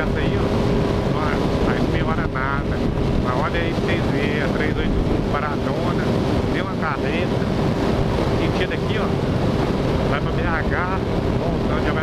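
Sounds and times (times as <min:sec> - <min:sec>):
motorcycle engine hum: 0:00.0 - 0:12.0
wind rushing over microphone: 0:00.0 - 0:12.0.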